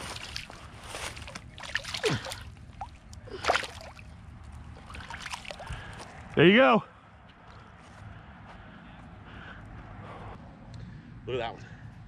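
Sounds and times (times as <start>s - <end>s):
footsteps on dirt and grass: 0.0s - 2.4s.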